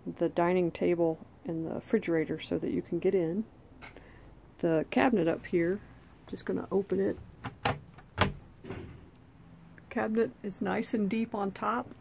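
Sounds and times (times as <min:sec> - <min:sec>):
cabinet door rustle: 0:07.2 - 0:09.0
cabinet latch click: 0:07.4 - 0:08.4.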